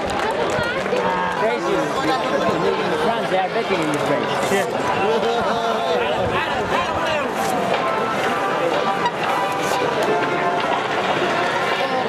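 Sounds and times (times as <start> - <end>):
crowd talking and shouting: 0.0 - 12.0.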